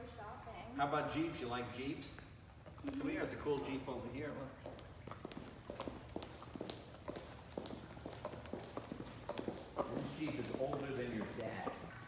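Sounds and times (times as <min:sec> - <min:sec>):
hard-soled footsteps on hard floor: 0:04.6 - 0:12.0.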